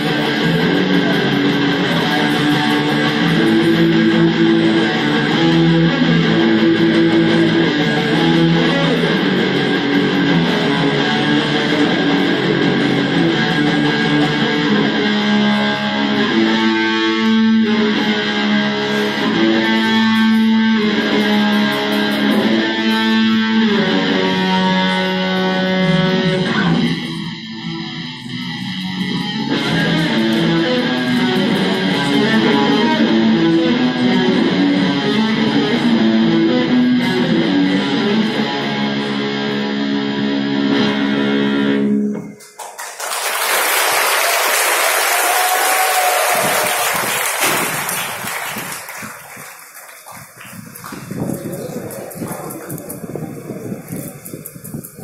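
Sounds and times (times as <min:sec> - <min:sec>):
electric guitars playing: 0:00.0 - 0:42.4, 0:43.4 - 0:55.0
audience cheering and applauding: 0:42.4 - 0:52.4.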